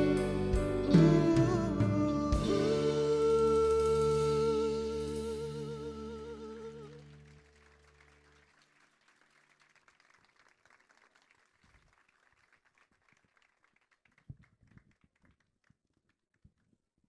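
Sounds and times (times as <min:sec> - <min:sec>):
live band held notes: 0:00.0 - 0:07.6
audience applause: 0:06.4 - 0:15.3.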